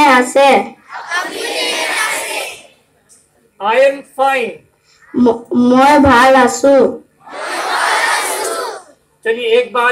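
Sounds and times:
children speaking in chorus: 0.9 - 2.7, 7.2 - 9.0.

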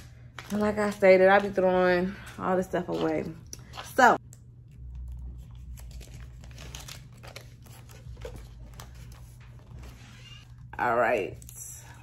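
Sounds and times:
paper being crumpled by hand: 5.4 - 10.0.

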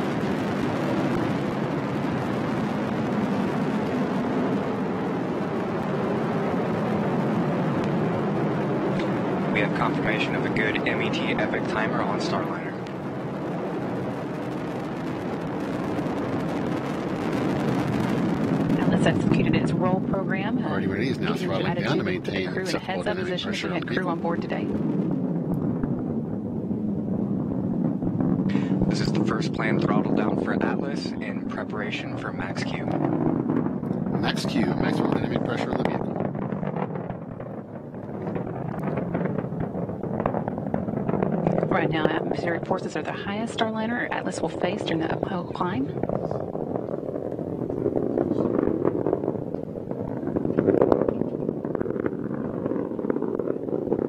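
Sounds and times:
rocket engine roar: 0.0 - 54.0.

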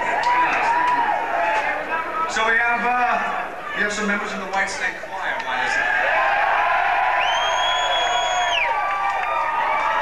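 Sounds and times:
audience cheering: 0.0 - 2.6, 5.4 - 10.0
shrill whistle: 7.2 - 8.8.

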